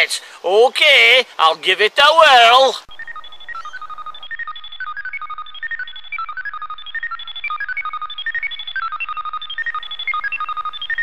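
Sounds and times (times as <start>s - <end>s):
electronic beeps hopping pitches: 2.9s - 11.0s.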